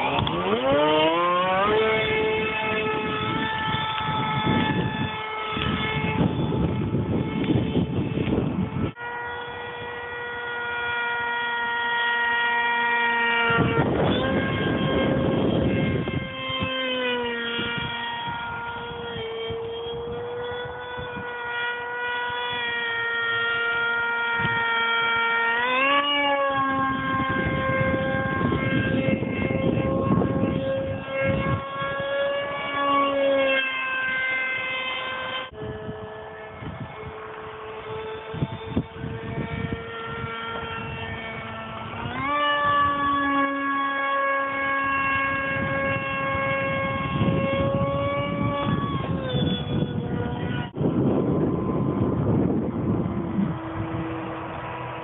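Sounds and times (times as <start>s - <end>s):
rc jet motor whine: 0.0s - 55.0s
wind buffeting microphone: 0.0s - 55.0s.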